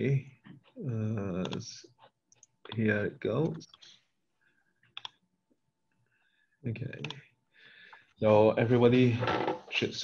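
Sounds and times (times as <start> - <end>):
computer mouse click: 4.9 - 5.2.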